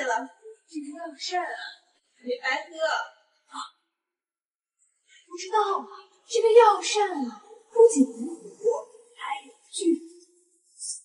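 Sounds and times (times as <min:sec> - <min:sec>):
woman speaking: 0:00.0 - 0:03.7, 0:05.3 - 0:10.0.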